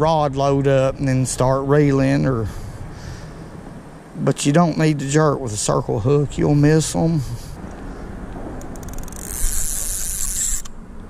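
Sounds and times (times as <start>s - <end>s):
fishing reel whirring: 8.6s - 10.8s.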